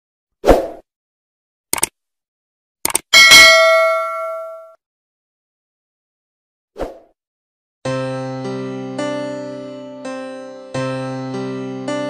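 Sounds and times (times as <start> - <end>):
quick double clicks: 1.7 - 2.0, 2.8 - 3.1
bright bell ding: 3.2 - 4.8.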